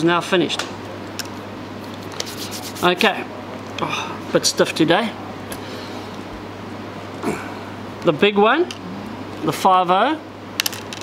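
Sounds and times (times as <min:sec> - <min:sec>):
hands rubbing fishing line: 0:01.8 - 0:03.1
person speaking: 0:02.2 - 0:04.7.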